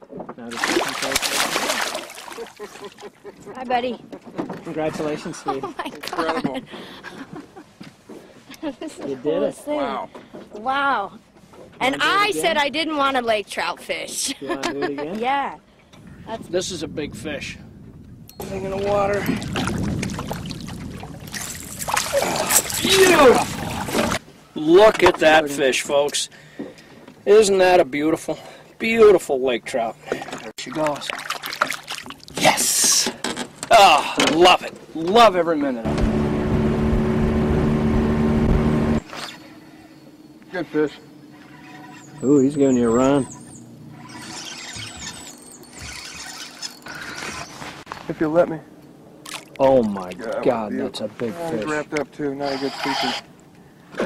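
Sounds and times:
water splashing beside boat: 0.4s - 3.3s, 18.7s - 24.3s, 30.0s - 32.9s, 49.2s - 50.4s
fish thrashing at surface: 0.5s - 2.8s, 19.3s - 24.2s
fishing reel drag squealing: 39.0s - 47.8s, 52.4s - 53.3s.

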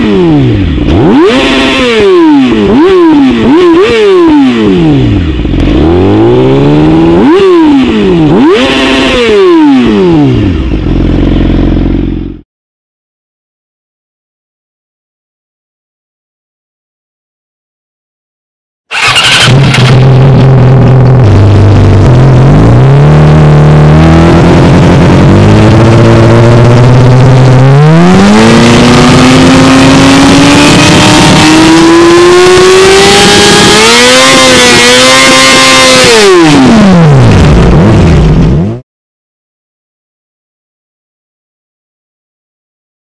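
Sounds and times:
motorcycle engine revving: 0.0s - 12.4s, 18.9s - 38.8s.

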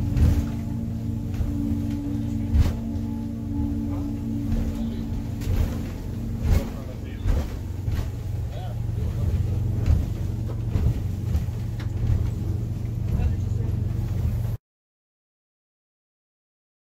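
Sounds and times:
boat engine running: 0.0s - 14.6s.

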